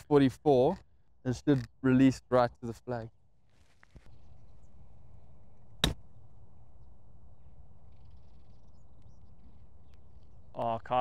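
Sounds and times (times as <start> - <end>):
golf club striking ball: 5.8 - 6.0.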